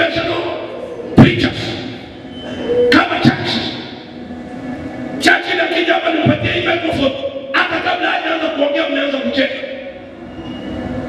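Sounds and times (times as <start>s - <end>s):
man preaching into a microphone: 0.0s - 2.0s, 2.8s - 4.0s, 5.2s - 9.9s.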